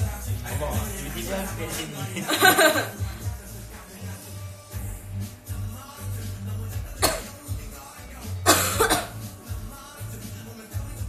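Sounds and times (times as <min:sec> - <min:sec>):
background music with bass line: 0:00.0 - 0:11.0
person coughing: 0:07.0 - 0:07.4, 0:08.4 - 0:09.2.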